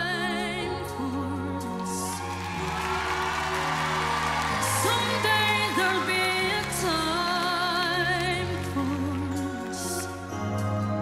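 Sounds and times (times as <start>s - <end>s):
woman singing a slow ballad: 0.0s - 2.6s, 4.6s - 11.0s
backing track: 0.0s - 11.0s.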